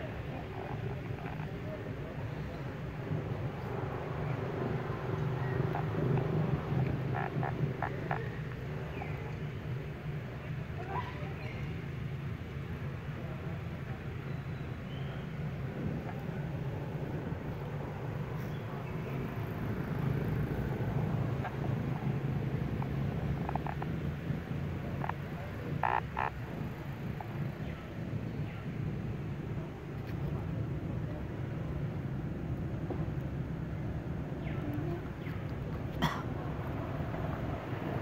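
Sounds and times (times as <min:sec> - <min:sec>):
steady low rumble: 0:00.0 - 0:38.0.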